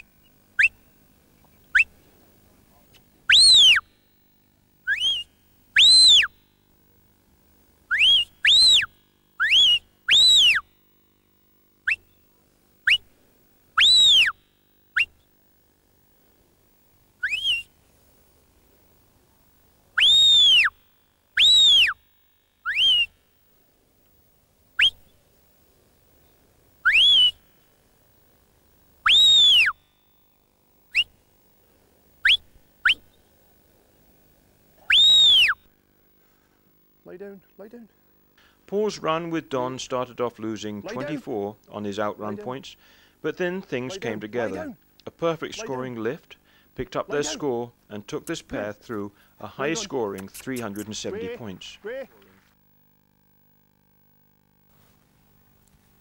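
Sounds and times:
sheepdog whistle commands: 3.3 - 3.8, 5.8 - 6.3, 13.8 - 14.3, 20.0 - 20.7, 21.4 - 22.0, 22.7 - 23.1, 26.8 - 27.4, 29.1 - 29.8, 34.9 - 35.6.

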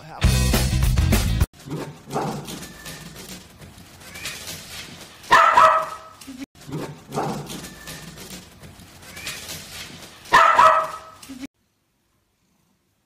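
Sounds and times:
dog barking: 1.6 - 2.7, 5.3 - 7.7, 10.3 - 11.2.

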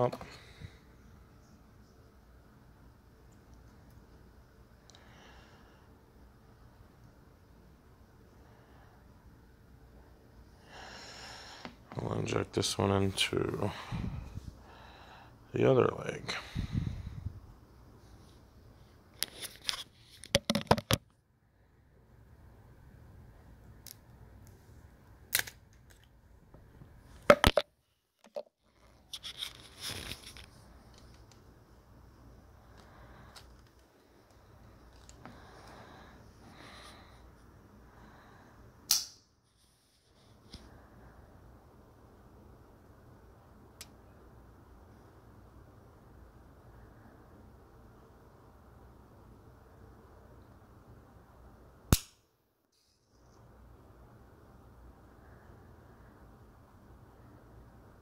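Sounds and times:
rustling: 28.6 - 31.4.

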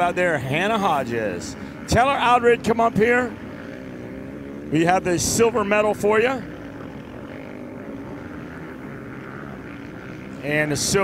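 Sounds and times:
distant dirt bike engines droning: 0.0 - 11.0.

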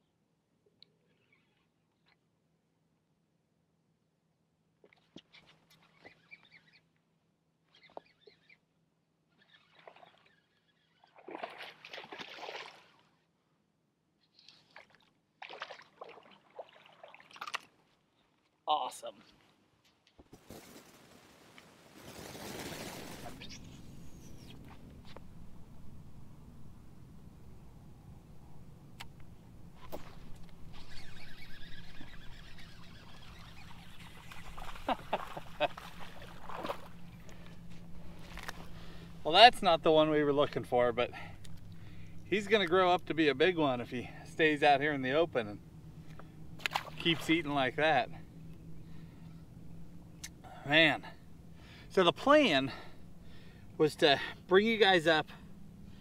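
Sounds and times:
fishing reel whirring: 7.7 - 8.7, 9.3 - 11.2, 29.8 - 34.9
water splashing: 9.6 - 13.1, 14.5 - 17.9, 32.0 - 37.5, 46.6 - 47.4.

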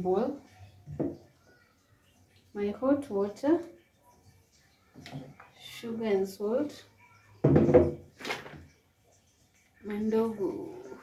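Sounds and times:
jars thunking on wooden counter: 0.9 - 1.2, 7.4 - 8.6.

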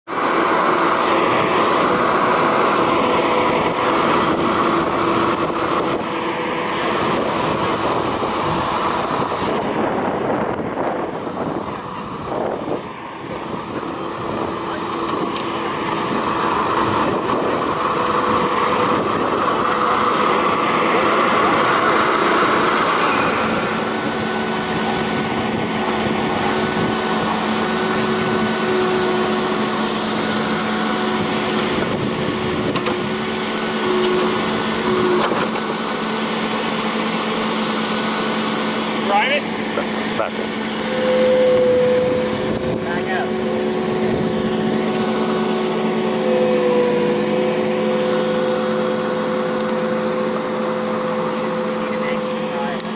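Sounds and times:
mower engine running: 0.0 - 52.9.

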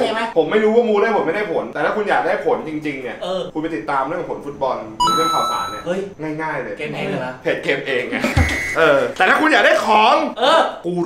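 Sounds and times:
bell-like ding: 5.0 - 5.9.

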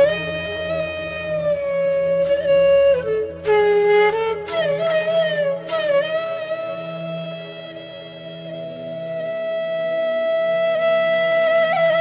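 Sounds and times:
flute long note: 0.0 - 12.0.

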